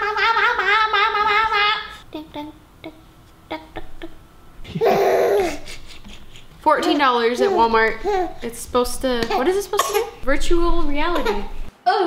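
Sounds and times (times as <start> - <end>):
faint giggles: 3.5 - 6.6.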